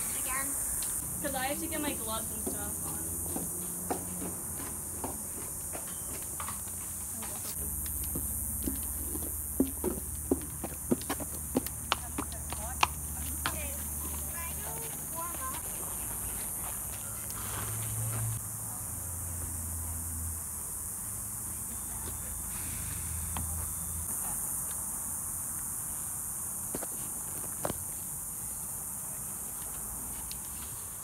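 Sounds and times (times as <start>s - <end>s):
horse hooves on brick paving: 1.3s - 18.4s.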